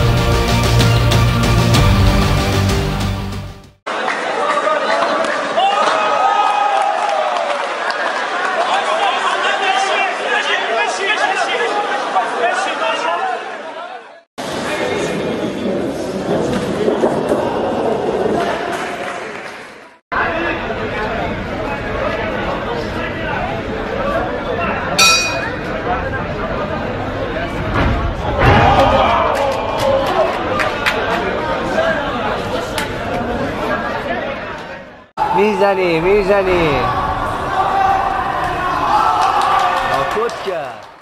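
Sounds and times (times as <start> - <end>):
crowd chatter: 7.9 - 38.8
spectators shouting and talking: 20.2 - 40.3
ring bell clang: 25.0 - 25.7.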